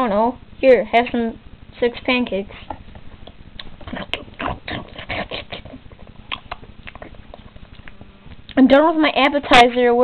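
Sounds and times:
person making gobbling eating noises: 3.6s - 8.6s.

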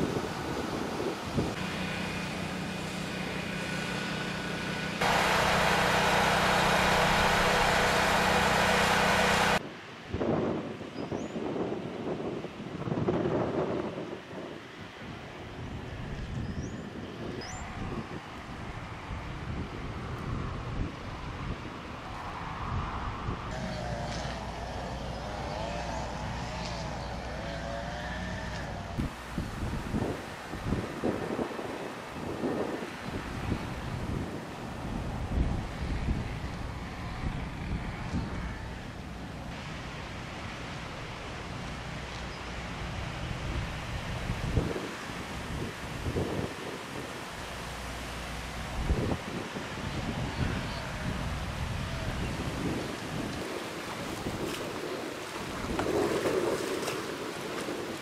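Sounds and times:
wind buffeting microphone: 0.0s - 1.6s, 5.0s - 27.4s, 28.6s - 39.6s, 42.8s - 58.0s
motor running steadily: 1.4s - 9.6s, 23.5s - 31.6s
choppy water: 23.5s - 58.0s.

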